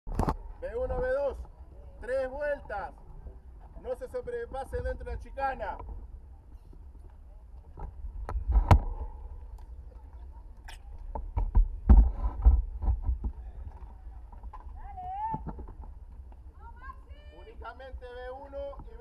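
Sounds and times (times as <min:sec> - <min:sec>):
wind rumble on microphone: 0:07.6 - 0:10.3.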